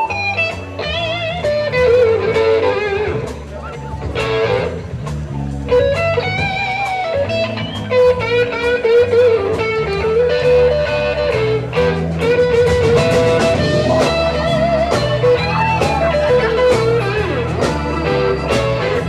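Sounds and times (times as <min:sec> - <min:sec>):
bass guitar: 0:00.0 - 0:19.0
drums: 0:00.0 - 0:19.0
electric guitar lead with bent notes: 0:00.0 - 0:19.0.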